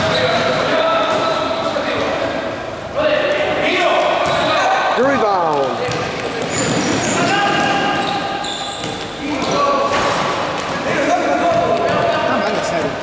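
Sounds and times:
sneakers squeaking on court: 0.0 - 2.1, 5.6 - 12.2
players' voices: 0.0 - 13.0
basketball dribbling: 5.5 - 8.1.

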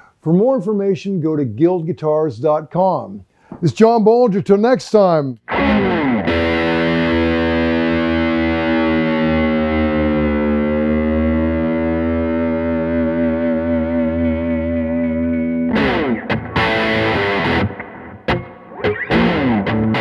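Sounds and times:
choppy guitar strums: 5.4 - 20.0
electric guitar chord ringing: 5.5 - 20.0.

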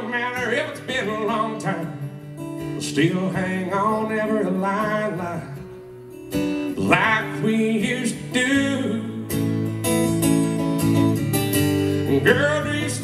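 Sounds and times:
man singing: 0.0 - 5.8, 6.7 - 9.5, 12.0 - 13.0
acoustic guitar strumming: 0.0 - 13.0.

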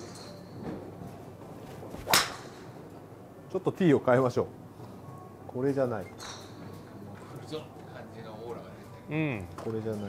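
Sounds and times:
golf club striking ball: 2.0 - 2.8.

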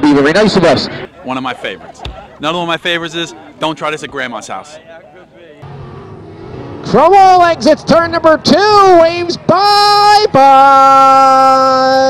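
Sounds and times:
race car engines running: 0.6 - 11.8.

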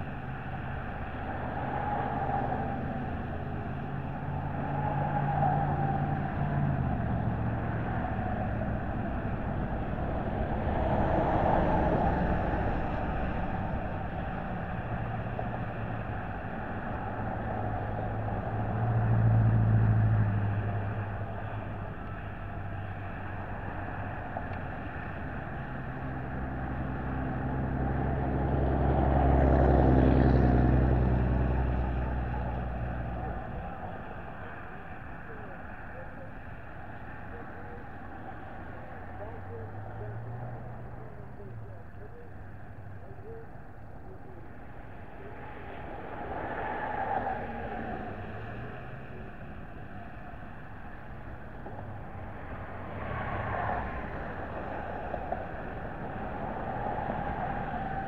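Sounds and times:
engine hum: 0.0 - 58.0
road noise: 0.0 - 58.0
vehicles passing: 0.0 - 58.0.

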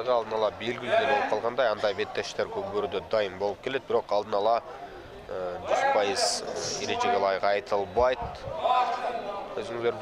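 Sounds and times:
man speaking commentary: 5.3 - 8.2.

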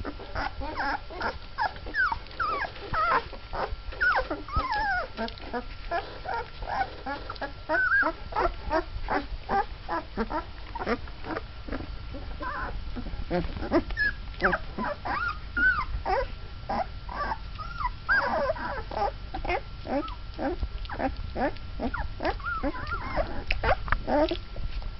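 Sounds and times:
puppies squeaking and whimpering: 0.0 - 24.4.

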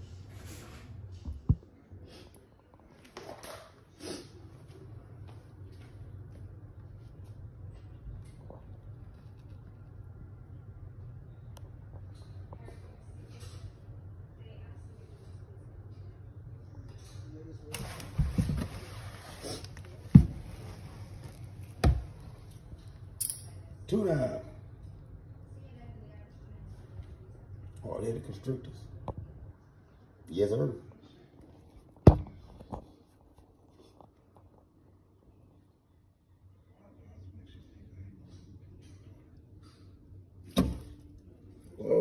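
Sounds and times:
steady low hum: 3.8 - 42.0.

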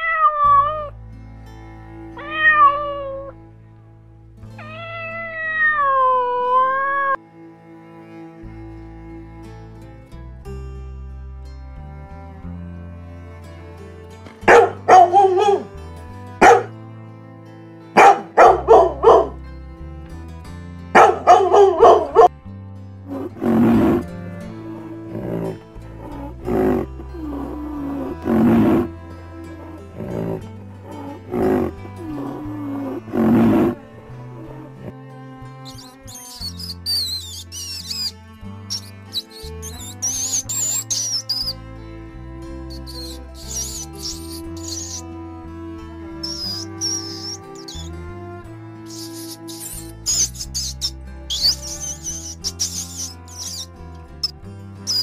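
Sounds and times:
background music: 0.6 - 5.4, 6.9 - 55.0
deeper rough animal calls: 14.5 - 15.7, 23.1 - 35.0, 35.7 - 41.7, 42.5 - 45.2, 46.1 - 48.1, 48.8 - 54.3
high squeaks and chirps: 35.6 - 41.6, 42.6 - 45.2, 46.2 - 48.0, 48.8 - 55.0.

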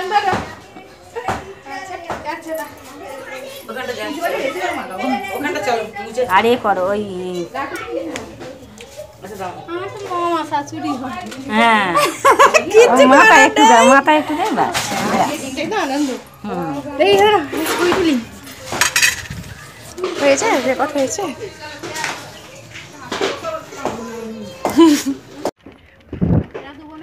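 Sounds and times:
small hard objects clinking: 17.6 - 21.2
child's voice: 23.9 - 25.0.

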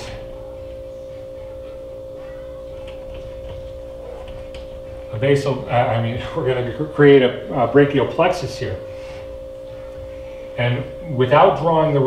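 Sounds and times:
high-pitched hum: 0.0 - 12.0.

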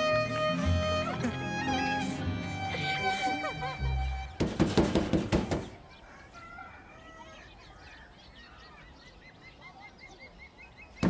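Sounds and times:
hand banging on door: 4.4 - 5.8
faint birds chirping: 5.2 - 11.0.

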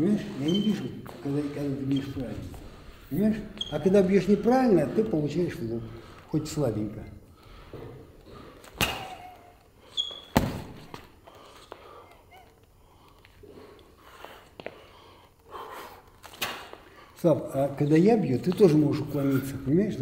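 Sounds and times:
punches smacking focus mitts: 8.6 - 9.4, 10.3 - 11.1.

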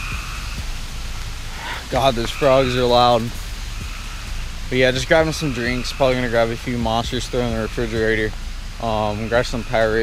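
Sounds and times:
frogs calling: 0.0 - 10.0.

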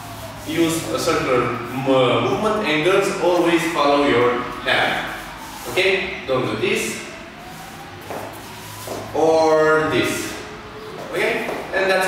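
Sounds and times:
dance shoes scuffing wooden floor: 8.0 - 9.1, 11.0 - 11.8.

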